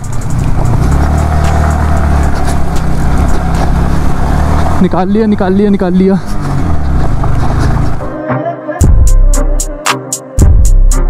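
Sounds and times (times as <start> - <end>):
motorcycle engine at low revs: 0.0 - 8.1
stones knocking under tyres: 0.1 - 4.8.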